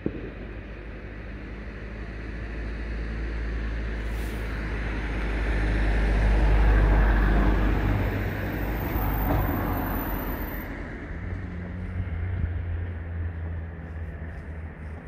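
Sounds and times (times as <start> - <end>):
vehicle passing by: 2.5 - 15.0.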